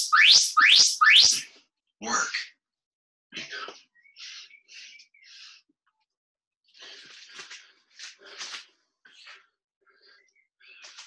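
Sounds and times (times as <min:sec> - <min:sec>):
electronic timer rising chirps: 0:00.0 - 0:01.4.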